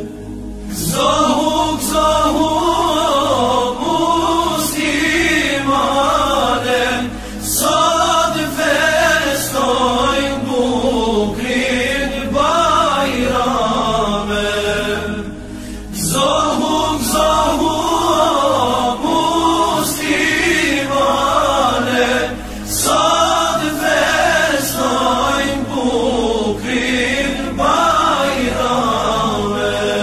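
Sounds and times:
devotional chant singing: 0:00.0 - 0:30.0.

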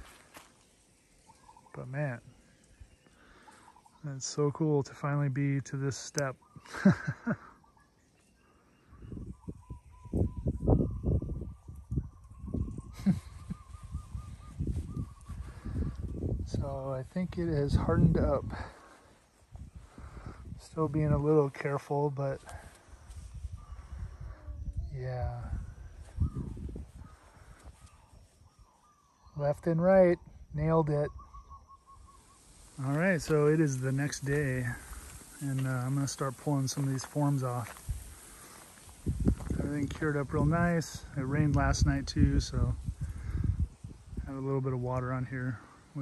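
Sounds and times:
faint short bird calls: 0:01.1 - 0:04.1
person laughing: 0:06.6 - 0:07.6, 0:12.9 - 0:13.6.

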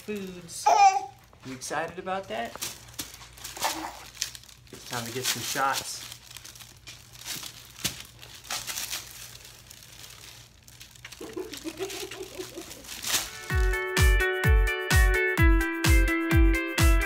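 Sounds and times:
paper sheet crinkling and rustling: 0:02.2 - 0:13.7
baby vocalizing: 0:03.6 - 0:04.1.

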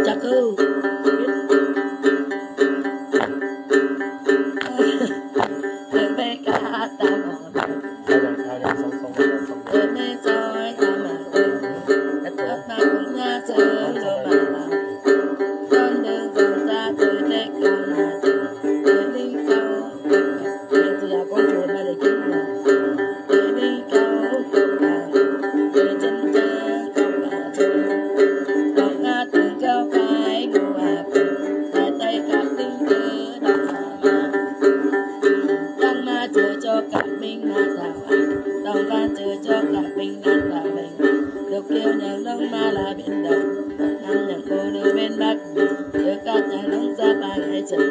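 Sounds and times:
plucked lute: 0:00.0 - 0:47.9.

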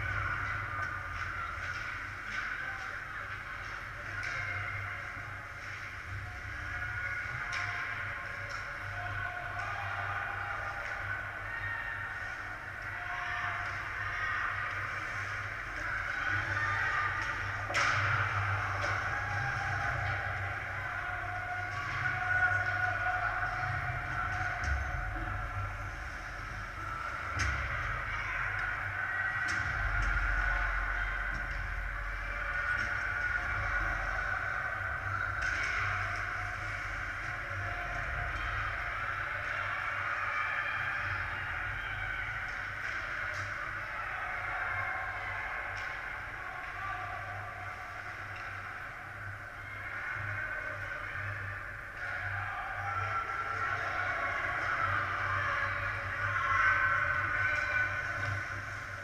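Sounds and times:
distant skating: 0:00.0 - 0:59.0.

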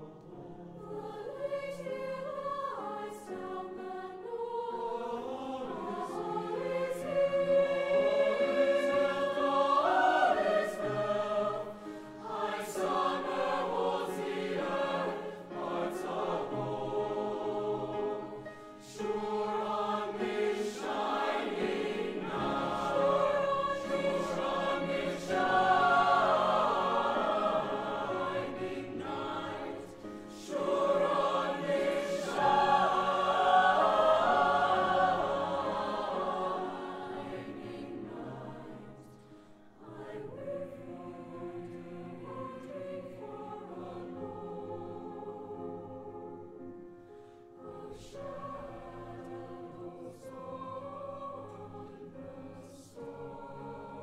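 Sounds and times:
choir singing in parts: 0:00.0 - 0:46.7, 0:47.6 - 0:54.0.

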